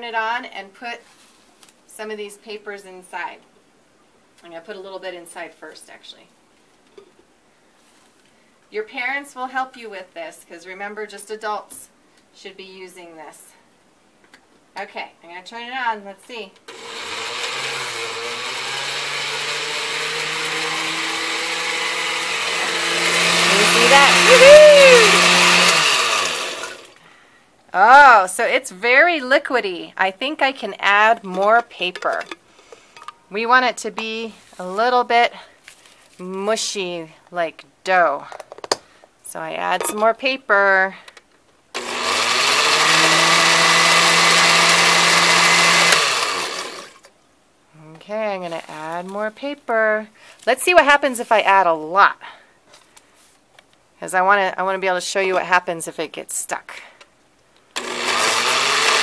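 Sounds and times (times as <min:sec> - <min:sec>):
blender churning pulp: 0:16.7 - 0:27.0, 0:41.8 - 0:47.1, 0:57.8 - 0:59.0.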